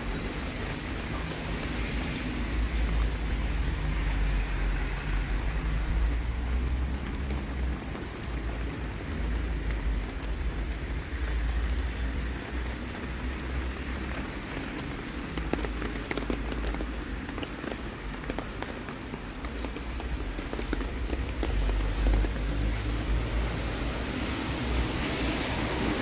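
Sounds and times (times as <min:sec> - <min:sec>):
rain on wet street: 0:00.0 - 0:26.0.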